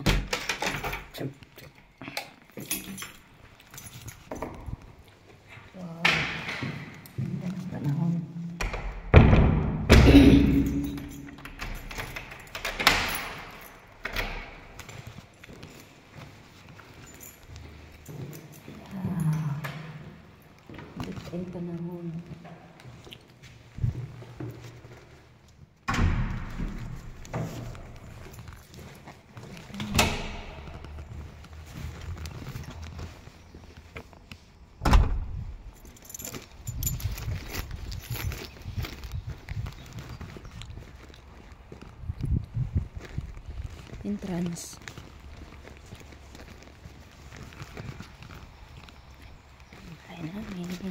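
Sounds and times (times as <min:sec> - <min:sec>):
keys jingling: 0:00.0 - 0:05.8, 0:09.9 - 0:25.6, 0:26.5 - 0:34.4, 0:35.3 - 0:50.9
footsteps: 0:01.1 - 0:50.9
door knocking shut and latching: 0:08.6 - 0:11.8, 0:34.8 - 0:35.4.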